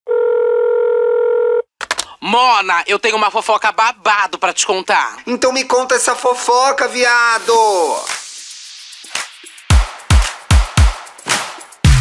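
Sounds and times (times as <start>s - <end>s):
telephone tone: 0.1s - 1.7s.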